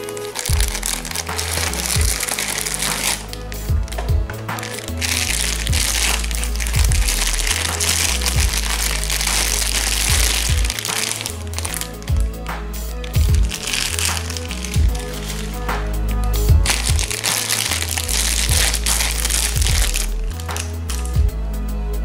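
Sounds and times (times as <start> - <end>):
plastic bag crinkling: 0.0 - 12.4, 13.0 - 15.6, 16.6 - 21.2
background music with bass line: 0.0 - 22.0.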